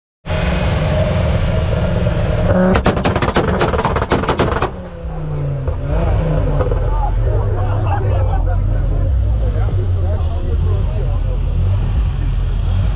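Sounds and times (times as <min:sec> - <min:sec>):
car engine idling: 0:00.3 - 0:12.9
car exhaust bangs and pops: 0:02.4 - 0:07.1
crowd chatter: 0:04.7 - 0:12.9.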